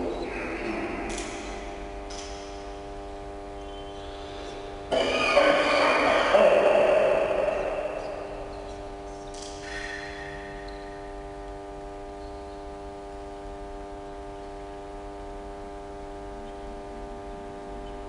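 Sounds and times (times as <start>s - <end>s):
steady electrical hum: 0.0s - 18.0s.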